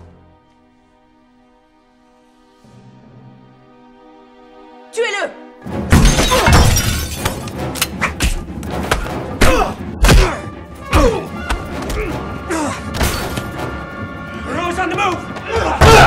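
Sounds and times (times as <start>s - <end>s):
punches thuds and crashes: 5.9s - 7.4s, 8.2s - 10.4s, 15.8s - 16.0s
men shouting and grunting: 8.1s - 13.0s, 14.3s - 16.0s
loud falling shout: 15.5s - 16.0s.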